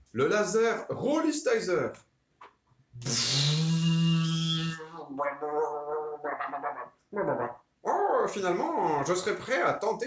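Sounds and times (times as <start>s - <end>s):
man making creature noises: 3.0s - 9.7s.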